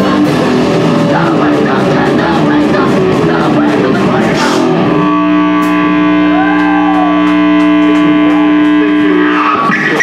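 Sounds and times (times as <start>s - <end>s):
sustained electric guitar chord: 0.2s - 9.7s.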